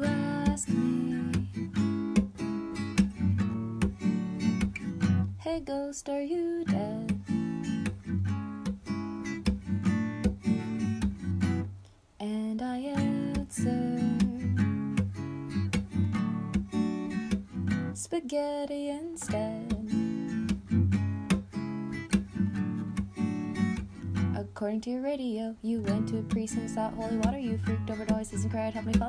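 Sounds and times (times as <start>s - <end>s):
person singing: 0.0s - 1.6s, 12.2s - 14.6s, 18.0s - 20.0s, 24.4s - 29.0s
acoustic guitar strumming: 0.0s - 11.8s, 12.8s - 24.8s, 25.7s - 29.0s.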